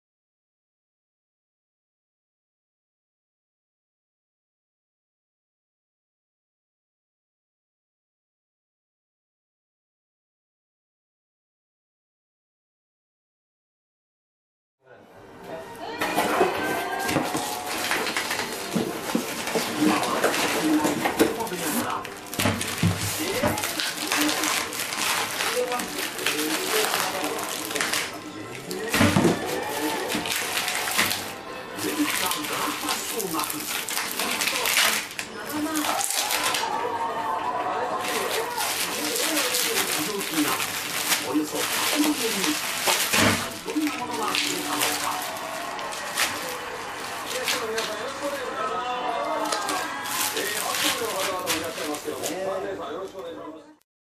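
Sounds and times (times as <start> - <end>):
plastic packaging crinkling: 16.0 - 36.9, 37.7 - 53.2.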